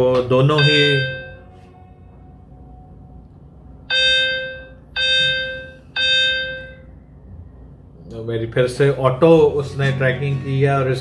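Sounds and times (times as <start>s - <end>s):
electronic beeps: 0.5s - 1.4s.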